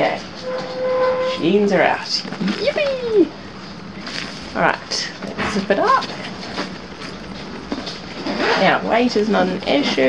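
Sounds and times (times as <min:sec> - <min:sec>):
zipper being pulled shut: 0:08.2 - 0:08.8.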